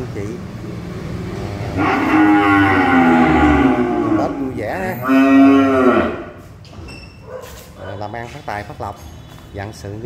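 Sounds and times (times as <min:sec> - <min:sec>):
young cow mooing: 0:01.8 - 0:06.4.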